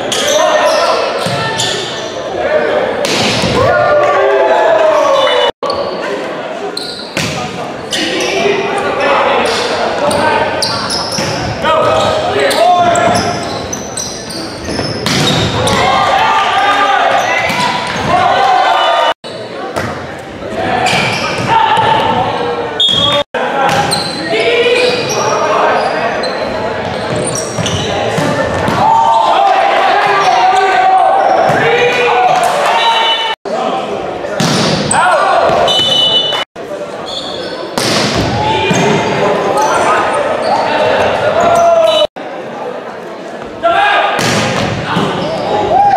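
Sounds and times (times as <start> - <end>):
people calling out and talking: 0.0 - 45.9.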